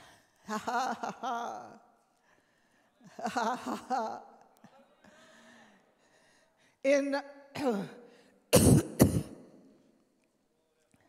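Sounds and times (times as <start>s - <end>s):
woman clearing her throat: 8.6s - 9.6s.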